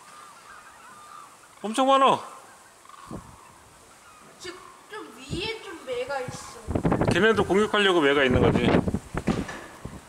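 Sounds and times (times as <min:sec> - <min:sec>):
distant cranes and geese calling: 0:00.0 - 0:06.7.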